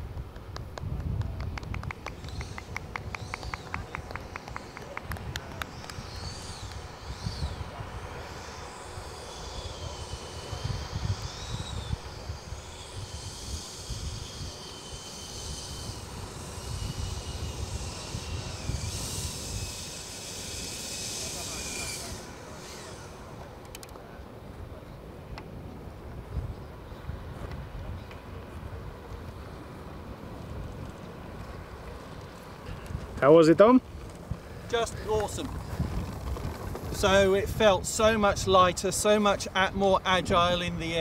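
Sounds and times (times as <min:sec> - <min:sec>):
low gusty rumble: 0:00.0 - 0:23.6, 0:24.4 - 0:41.0
electric ducted fan whining: 0:00.0 - 0:41.0.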